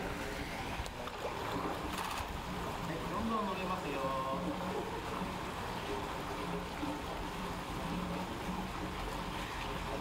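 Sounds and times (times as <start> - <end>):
water rushing in a pool: 0.0 - 10.0.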